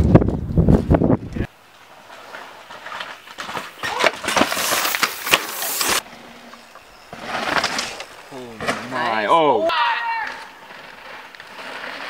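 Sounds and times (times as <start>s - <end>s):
bike tyres skidding through gravel: 1.6s - 12.0s
bike clattering over rocks: 2.2s - 6.0s.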